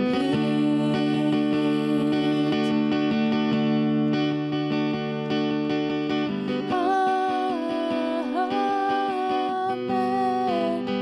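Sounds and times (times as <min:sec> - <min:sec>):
woman singing long notes: 0:00.0 - 0:02.9
acoustic guitar strumming chords: 0:00.0 - 0:11.0.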